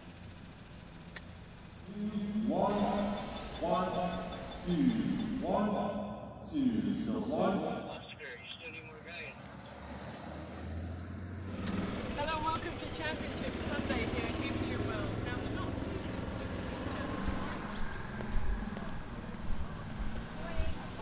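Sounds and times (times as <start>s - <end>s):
people's voices: 1.9s - 9.8s, 11.7s - 21.0s
car engine running: 2.7s - 5.8s, 11.5s - 21.0s.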